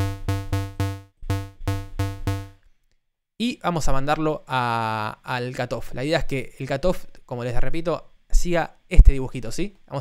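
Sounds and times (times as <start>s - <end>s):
low square-wave synth notes: 0.0s - 2.6s.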